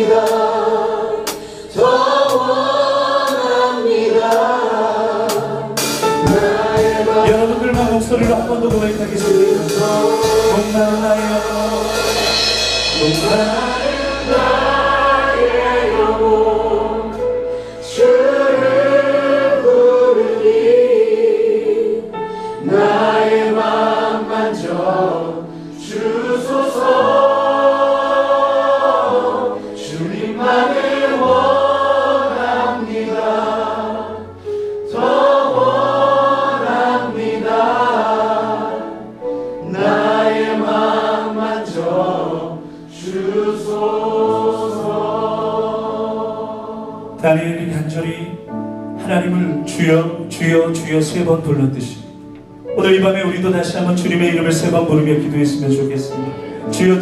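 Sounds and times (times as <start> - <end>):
congregation singing: 0.0 - 57.0
praise band playing: 0.0 - 57.0.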